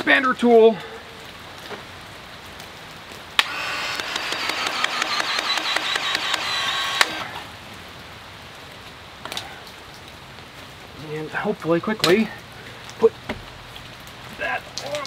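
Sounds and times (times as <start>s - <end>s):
expansion tool motor whine: 3.4s - 7.4s.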